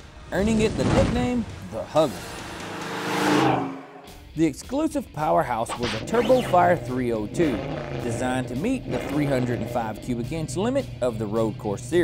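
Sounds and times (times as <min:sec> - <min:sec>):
car driving past: 0:01.4 - 0:04.2.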